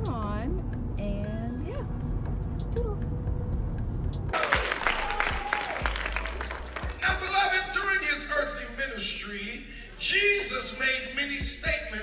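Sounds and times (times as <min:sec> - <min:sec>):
congregation applauding: 0:04.3 - 0:07.6.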